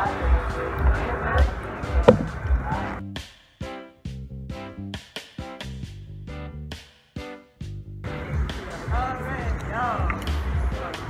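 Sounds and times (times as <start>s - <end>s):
music: 0.0s - 11.0s
voices: 8.2s - 11.0s.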